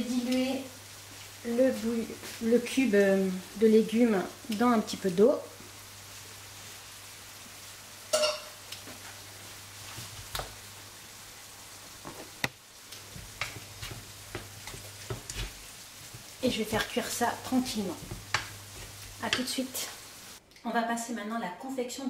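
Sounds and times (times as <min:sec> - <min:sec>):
mince sizzling in a frying pan: 0:00.0 - 0:20.4
spatula scraping and tapping pan: 0:13.0 - 0:19.6.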